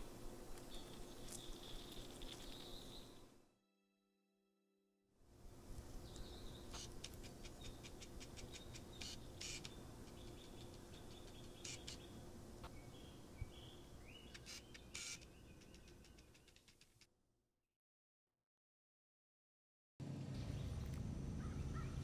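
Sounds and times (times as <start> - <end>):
low steady hum: 0.0 - 3.6, 5.2 - 16.3, 20.0 - 22.0
faint chirping: 0.6 - 3.4, 6.0 - 16.8.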